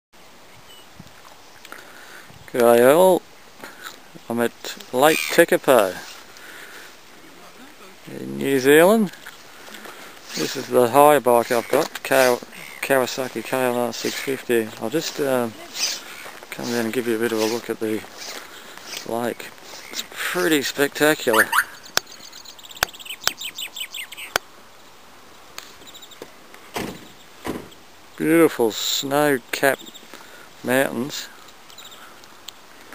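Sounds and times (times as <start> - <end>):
faint steady hiss: 0.2 - 32.9
soft rush of noise: 0.2 - 32.9
high chirps: 21.3 - 24.3.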